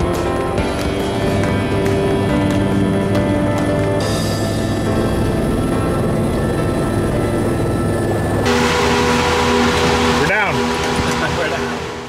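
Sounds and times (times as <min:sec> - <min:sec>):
background music: 0:00.0 - 0:12.0
helicopter cabin hiss and hum: 0:00.0 - 0:12.0.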